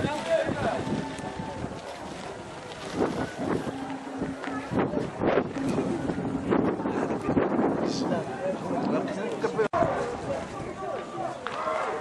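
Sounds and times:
faint voices: 0:00.0 - 0:12.0
wind buffeting microphone: 0:00.0 - 0:12.0.

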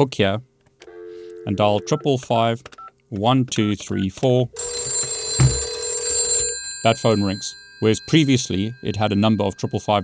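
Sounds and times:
telephone bell ringing: 0:00.9 - 0:02.0, 0:04.6 - 0:10.0
thump: 0:05.4 - 0:05.7.

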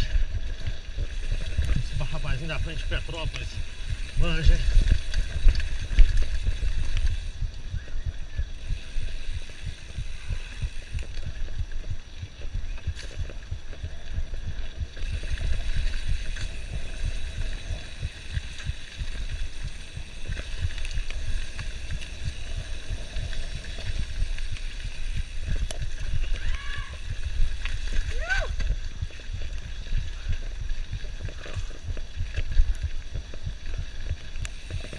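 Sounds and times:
mountain bike rumble and rattle: 0:00.0 - 0:34.9
wind buffeting microphone: 0:00.0 - 0:34.9.

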